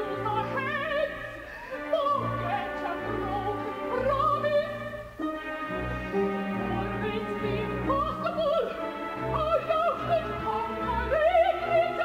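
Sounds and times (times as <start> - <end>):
operatic soprano singing: 0.0 - 12.0
orchestral accompaniment: 0.0 - 12.0.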